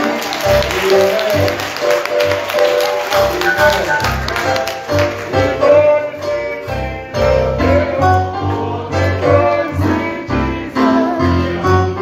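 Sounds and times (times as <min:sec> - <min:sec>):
live church music: 0:00.0 - 0:12.0.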